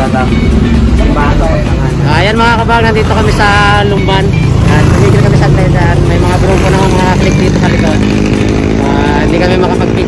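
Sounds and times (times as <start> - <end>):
motorcycle engine: 0.0 - 10.0
road rumble: 0.0 - 10.0.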